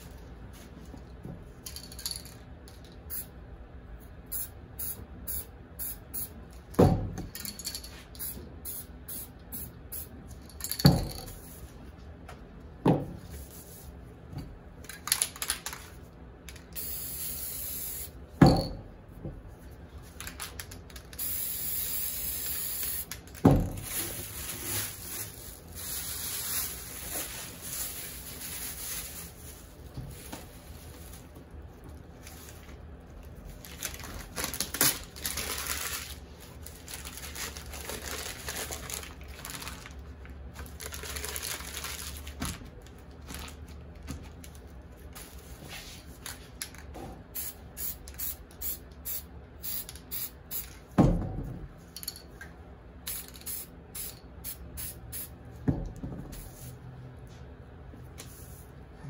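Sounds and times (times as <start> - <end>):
spray paint can hissing: 16.8 - 18.1, 21.1 - 23.2, 47.4 - 50.7, 53.1 - 55.3.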